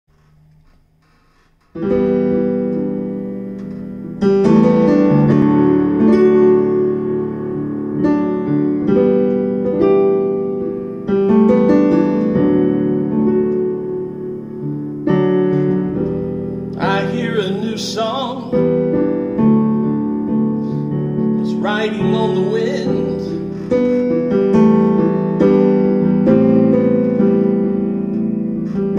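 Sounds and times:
piano playing slow chords: 0:00.1 - 0:28.9
person singing: 0:16.7 - 0:18.9, 0:21.4 - 0:23.8.

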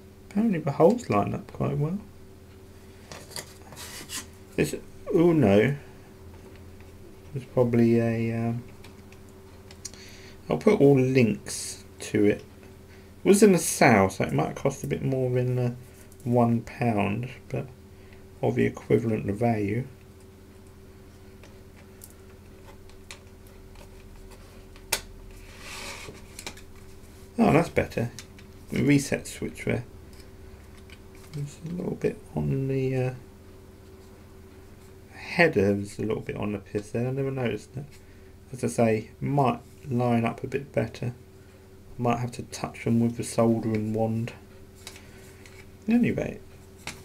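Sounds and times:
low electrical hum: 0:00.0 - 0:47.0.

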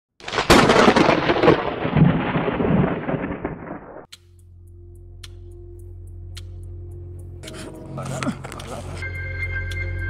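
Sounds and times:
thunderclap crack and rumble: 0:00.2 - 0:04.1.

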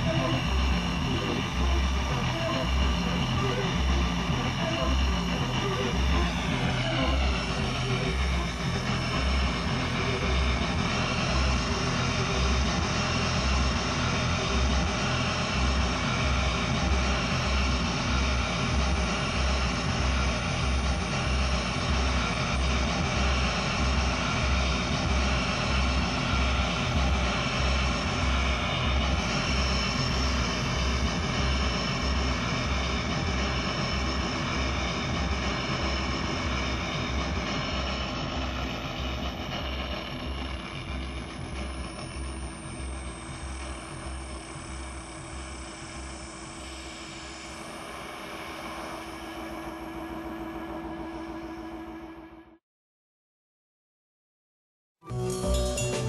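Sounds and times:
low bass pulse: 0:00.0 - 0:51.6
droning electronic noise: 0:00.0 - 0:52.6.

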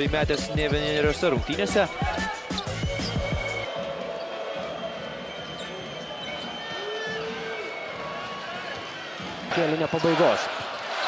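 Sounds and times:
background music with beat: 0:00.0 - 0:06.8
crowd noise: 0:00.0 - 0:11.0.

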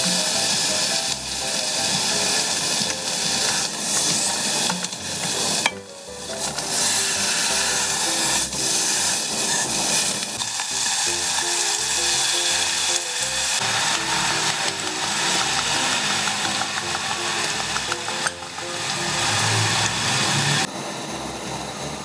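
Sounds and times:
background music melody: 0:00.0 - 0:09.8, 0:10.4 - 0:22.0
meat sizzling in a pot: 0:00.0 - 0:20.7.

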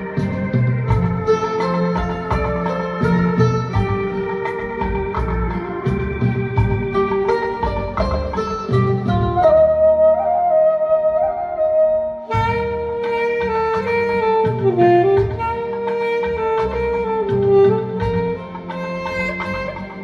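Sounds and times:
saxophone playing slow melody: 0:00.0 - 0:05.6, 0:09.2 - 0:20.0
recorded backing music: 0:00.0 - 0:20.0.

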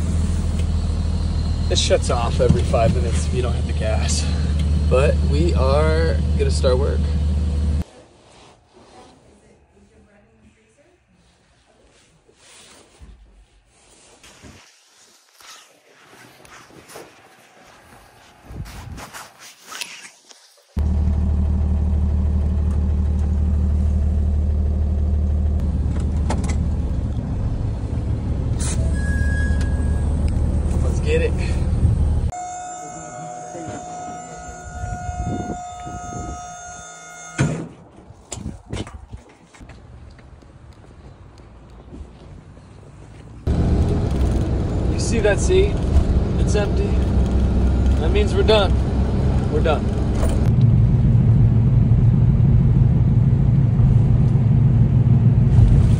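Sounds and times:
truck engine drone in cab: 0:00.0 - 0:07.8, 0:20.8 - 0:37.8, 0:43.4 - 0:55.9
steady high tones: 0:32.3 - 0:37.6.

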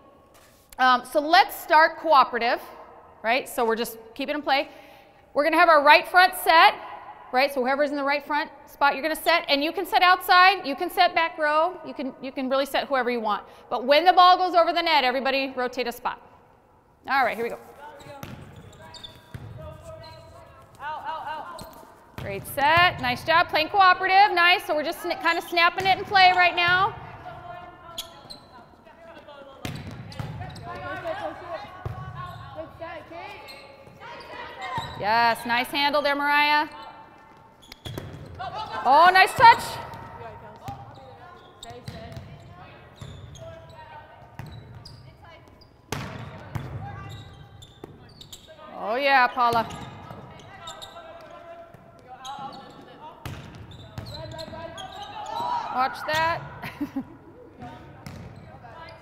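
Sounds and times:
volleyball hits: 0:37.7 - 0:40.9, 0:45.9 - 0:47.0, 0:53.2 - 0:54.6.

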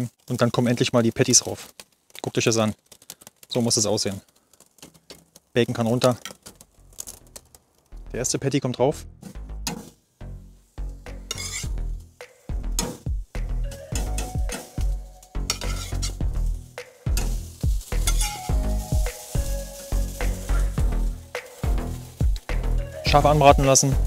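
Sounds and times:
burger patties sizzling on grill: 0:09.8 - 0:24.0.

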